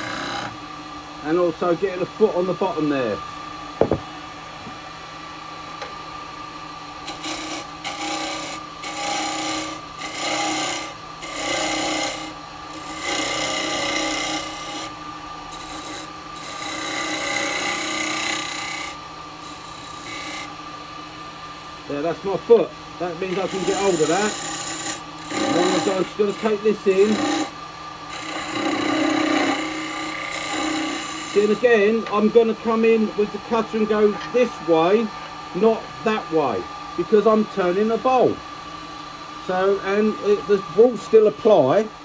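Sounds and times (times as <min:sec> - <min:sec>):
wood lathe humming: 0:00.0 - 0:00.5, 0:07.0 - 0:20.6, 0:21.2 - 0:38.4, 0:39.4 - 0:42.0
sharp knock: 0:03.8 - 0:04.1
cutter rasping scrapes on wood: 0:23.3 - 0:27.5.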